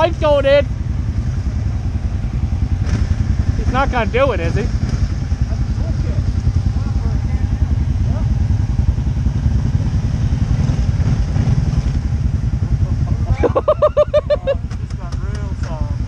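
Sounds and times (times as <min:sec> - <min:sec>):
engine running at low revs: 0:00.0 - 0:16.0.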